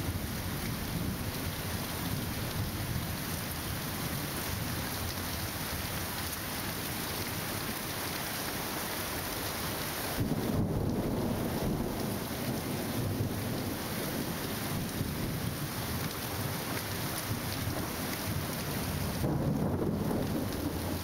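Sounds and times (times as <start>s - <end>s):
steady rain: 0.0s - 21.0s
rolling thunder: 10.2s - 15.6s, 19.1s - 21.0s.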